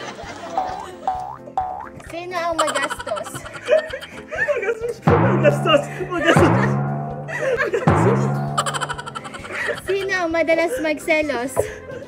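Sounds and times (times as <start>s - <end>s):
background music with low beat: 0.2s - 12.0s
cartoon boing: 0.6s - 2.0s, 2.6s - 4.2s, 7.9s - 10.1s.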